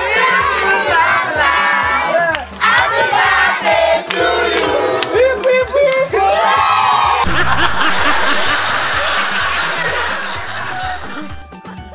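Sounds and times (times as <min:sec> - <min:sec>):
crowd shouting and chanting: 0:00.0 - 0:11.0
music with bass beat: 0:07.2 - 0:11.9.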